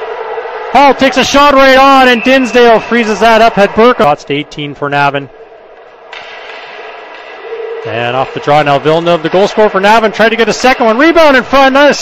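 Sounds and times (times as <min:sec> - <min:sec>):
murmur of crowd and rink: 0:00.0 - 0:12.0.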